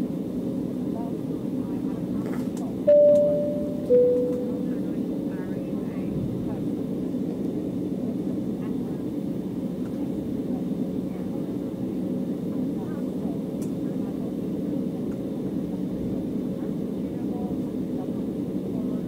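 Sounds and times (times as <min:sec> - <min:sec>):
jet cabin drone: 0:00.0 - 0:19.0
cabin chime: 0:02.9 - 0:04.7.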